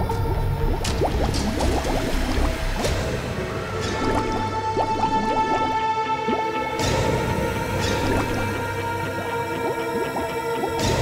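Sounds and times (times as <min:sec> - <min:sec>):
dramatic music with held tones: 0:00.0 - 0:11.0
underwater bubbling: 0:00.0 - 0:11.0.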